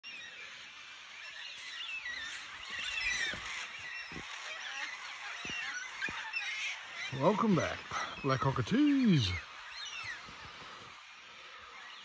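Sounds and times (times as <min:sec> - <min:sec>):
birds chirping and whistling: 0:00.0 - 0:12.0.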